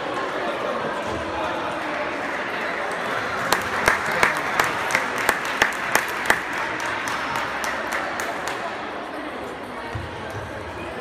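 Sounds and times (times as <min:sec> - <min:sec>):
sports hall background noise: 0:00.0 - 0:11.0
hand clapping: 0:03.4 - 0:08.7.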